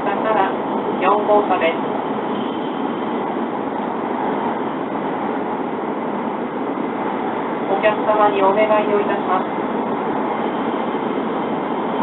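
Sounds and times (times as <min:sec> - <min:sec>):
train cabin running noise: 0:00.0 - 0:12.0.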